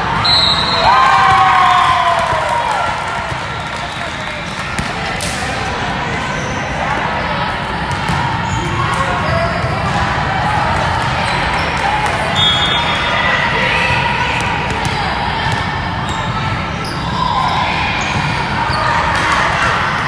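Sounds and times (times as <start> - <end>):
chatter and shouts: 0.0 - 20.0
volleyballs hit and bouncing: 0.8 - 5.8, 7.7 - 12.4, 14.2 - 16.0.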